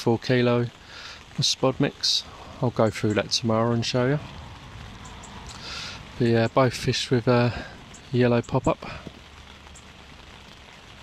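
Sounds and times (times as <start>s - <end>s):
steady rain hiss: 0.0s - 11.0s.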